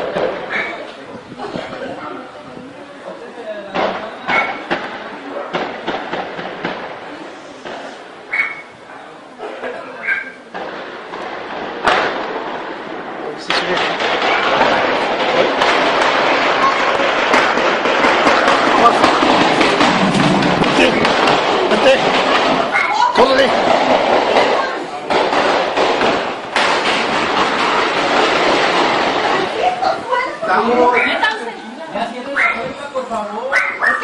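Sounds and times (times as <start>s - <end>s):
people's voices: 0.0s - 34.0s
rapid gunfire bursts: 3.8s - 7.1s, 13.5s - 31.3s.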